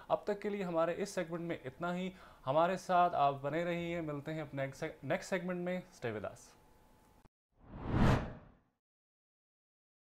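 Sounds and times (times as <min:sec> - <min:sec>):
transition whoosh: 0:07.6 - 0:08.5.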